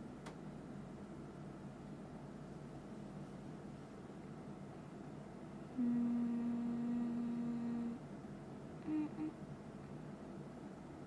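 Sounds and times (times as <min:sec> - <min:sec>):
woman humming: 0:05.7 - 0:08.0, 0:08.8 - 0:09.4.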